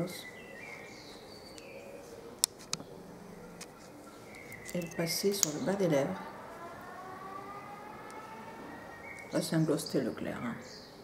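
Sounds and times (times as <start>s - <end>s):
faint multi-tone whine: 0.0s - 11.0s.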